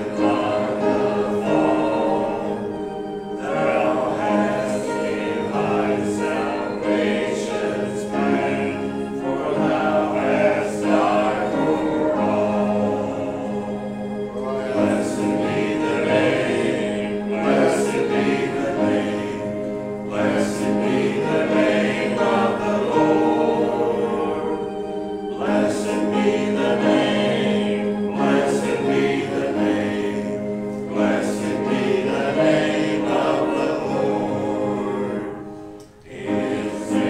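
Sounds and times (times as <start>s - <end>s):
congregation singing a hymn: 0.0s - 37.0s
held accompaniment tones: 0.0s - 37.0s.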